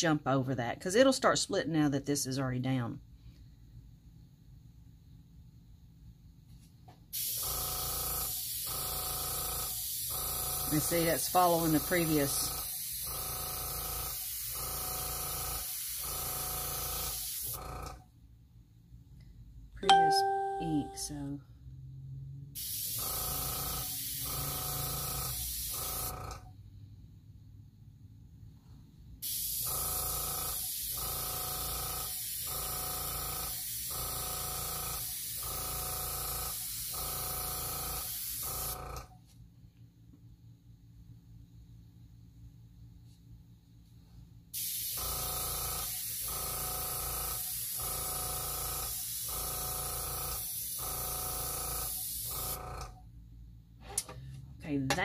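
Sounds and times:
brief ringing tone: 19.8s - 21.2s.

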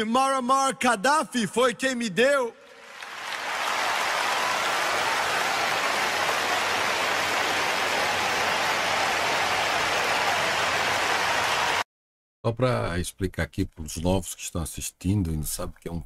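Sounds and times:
audience applauding: 2.7s - 11.8s.

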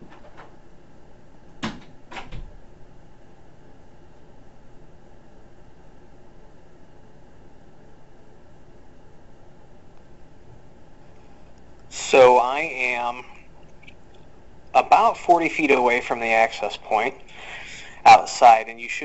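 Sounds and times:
faint hum: 0.0s - 19.0s
door knocks shutting: 1.6s - 2.5s.

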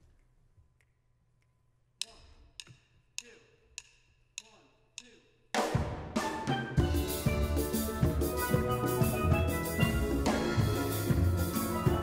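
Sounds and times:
steel band playing calypso: 5.6s - 12.0s.

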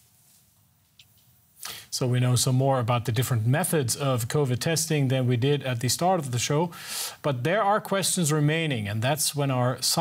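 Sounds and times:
short hiss: 0.0s - 2.0s
man speaking: 1.7s - 10.0s.

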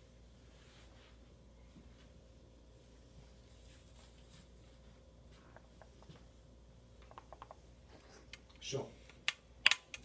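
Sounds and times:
sharp clicks: 8.3s - 10.0s.

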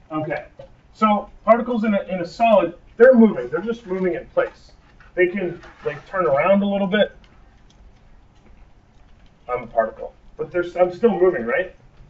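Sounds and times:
man speaking: 0.0s - 7.2s, 9.5s - 11.8s.

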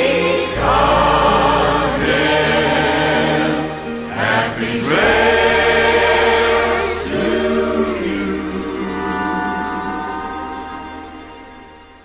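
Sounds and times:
choir singing held chords: 0.0s - 12.0s.

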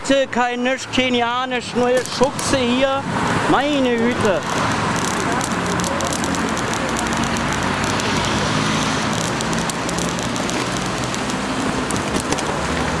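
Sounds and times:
road traffic passing: 0.0s - 13.0s
crackles: 3.2s - 13.0s
crowd din: 4.0s - 13.0s.

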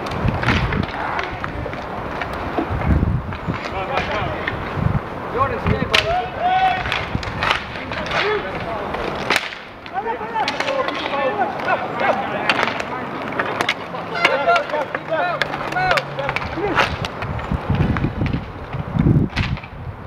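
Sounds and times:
hockey sticks clacking: 0.0s - 4.8s, 5.4s - 19.8s
skate wheels rolling and scraping: 0.0s - 20.0s.

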